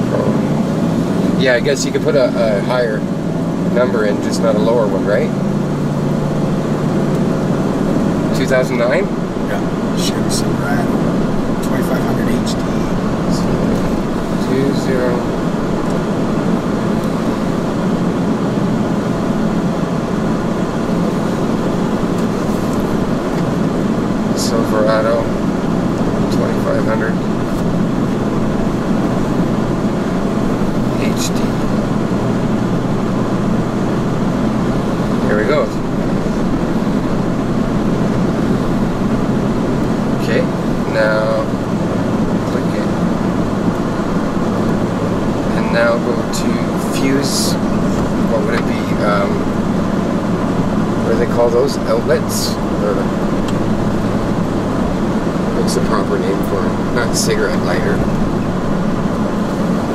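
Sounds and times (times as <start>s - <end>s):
low hum: 0.0s - 59.9s
road and engine noise in car: 0.0s - 59.9s.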